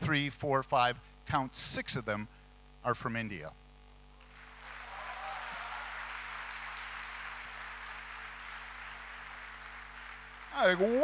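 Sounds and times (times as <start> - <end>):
audience applauding: 4.2 - 11.0.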